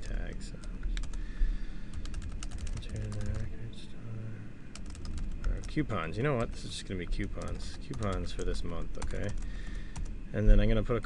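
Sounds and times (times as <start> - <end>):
typing on computer keyboard: 1.9 - 3.5, 4.8 - 5.8, 7.3 - 10.1.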